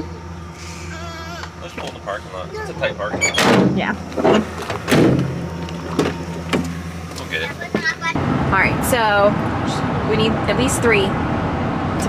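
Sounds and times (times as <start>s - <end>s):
van engine idling: 0.0s - 12.0s.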